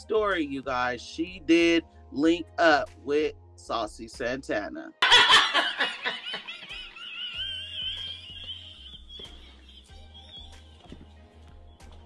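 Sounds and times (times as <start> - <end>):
background music: 0.0 - 12.0
two people laughing: 5.0 - 11.0.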